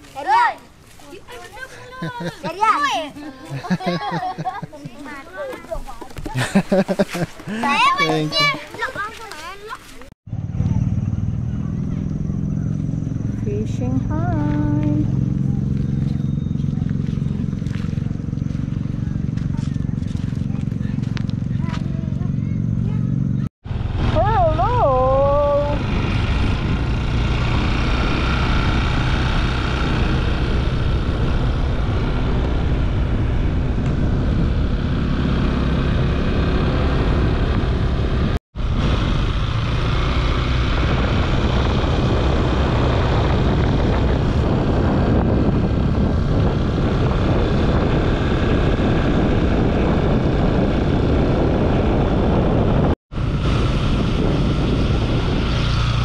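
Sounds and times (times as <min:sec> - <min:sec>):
motor scooter engine: 0:10.3 - 0:56.0
wind noise on microphone: 0:10.3 - 0:56.0.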